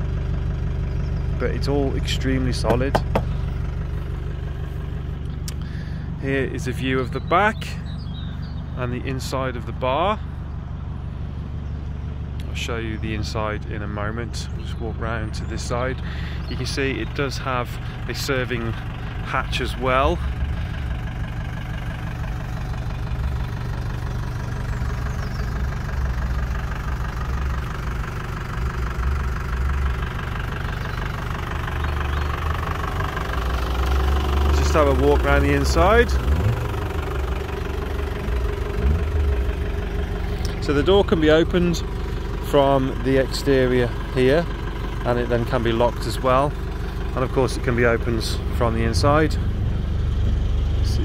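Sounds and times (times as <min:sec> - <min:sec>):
minibus engine idling: 0:00.0 - 0:51.0.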